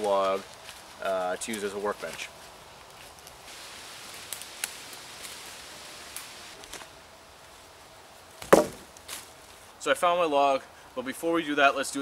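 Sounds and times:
faint ticks and rustles: 0:00.0 - 0:09.9
low hiss: 0:00.0 - 0:12.0
wood striking wood: 0:08.4 - 0:08.9.

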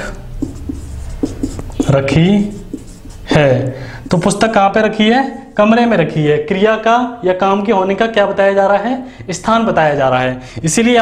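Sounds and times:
marker pen writing on whiteboard: 0:00.0 - 0:05.7.

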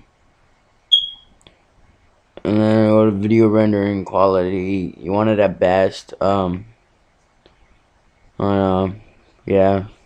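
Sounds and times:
short high electronic beep: 0:00.9 - 0:01.3.

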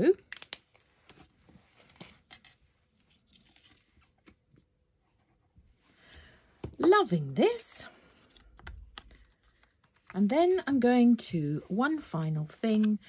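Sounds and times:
paper rustling: 0:00.7 - 0:04.8, 0:08.2 - 0:10.8.

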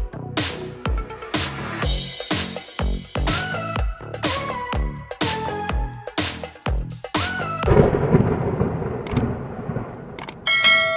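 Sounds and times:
low rumbling whoosh and boom: 0:07.7 - 0:10.4.

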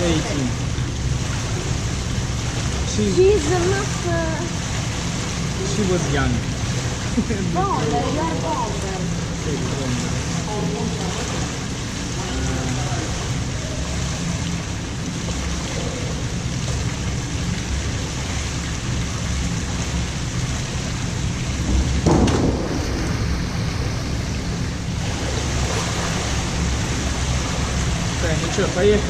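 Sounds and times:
steady rushing pool hall noise: 0:00.0 - 0:29.0
diver splashing into pool: 0:21.7 - 0:24.5.

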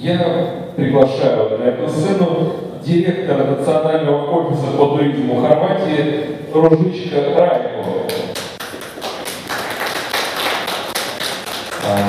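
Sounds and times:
audience applauding: 0:08.3 - 0:12.0.

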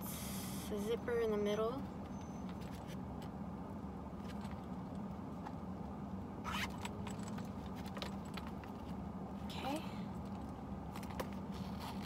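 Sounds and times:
steady low hum: 0:00.0 - 0:12.0
metal zipper clicks and clinks: 0:06.5 - 0:07.5
wallet rustling: 0:11.0 - 0:12.0.

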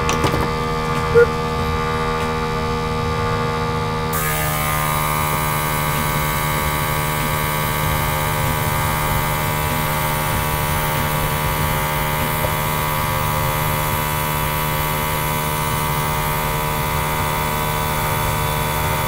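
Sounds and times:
airbrush compressor running: 0:04.0 - 0:19.0.

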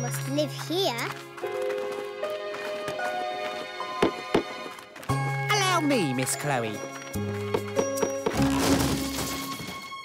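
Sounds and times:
background music: 0:00.0 - 0:10.0
cartoon wooden door crash: 0:08.2 - 0:09.5.

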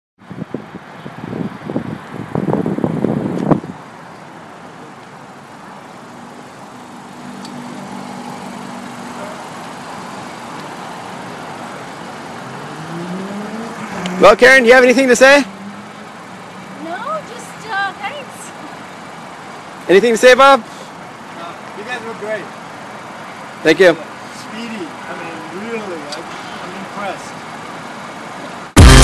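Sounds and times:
traffic hum: 0:00.2 - 0:29.0
car engine: 0:00.3 - 0:29.0
rising tone: 0:12.4 - 0:14.2, 0:28.8 - 0:29.0.

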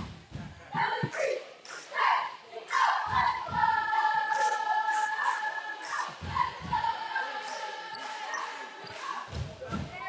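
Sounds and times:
low thuds: 0:00.0 - 0:01.2.

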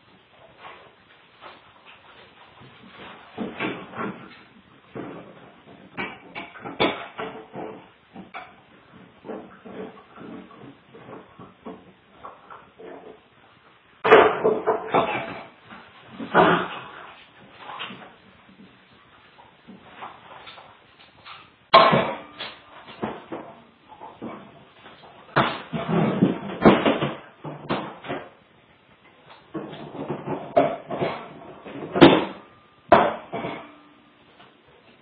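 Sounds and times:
dogs playing on tile floor: 0:00.0 - 0:32.4.

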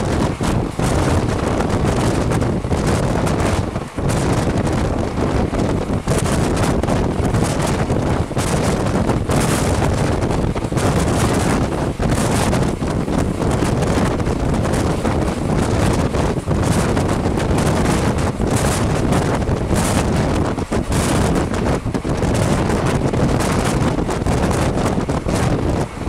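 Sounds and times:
train rumbling on rails: 0:00.0 - 0:26.0
wind buffeting microphone: 0:00.0 - 0:26.0.

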